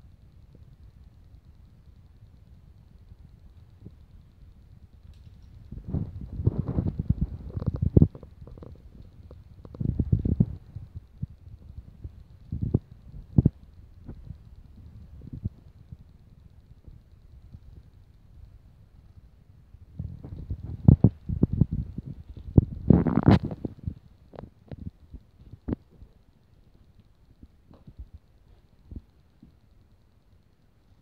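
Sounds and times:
rustling and low thumps: 3.7 - 29.6.

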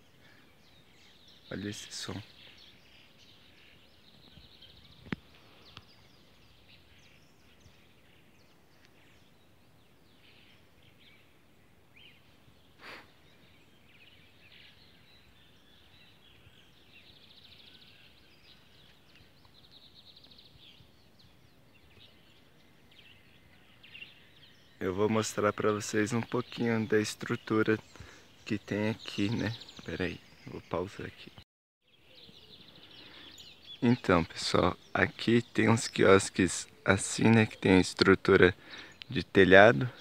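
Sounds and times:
birds chirping and trilling: 0.0 - 40.0.

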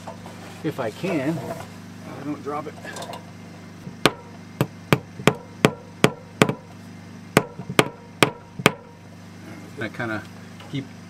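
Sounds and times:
hammer tapping: 4.0 - 6.7, 7.4 - 8.9.

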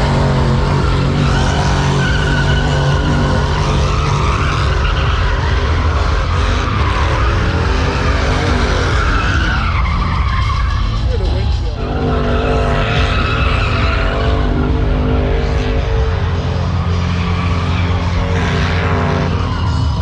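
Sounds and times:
car engine revving: 0.0 - 20.0
tyres screeching: 0.0 - 20.0.

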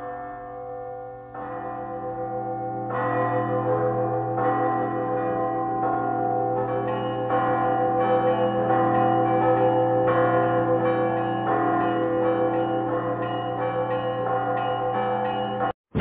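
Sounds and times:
church bells ringing: 0.0 - 15.8.

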